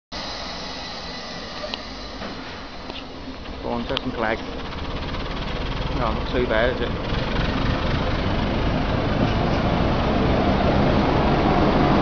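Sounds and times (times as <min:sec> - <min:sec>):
diesel locomotive engine running: 0:00.1 - 0:12.0.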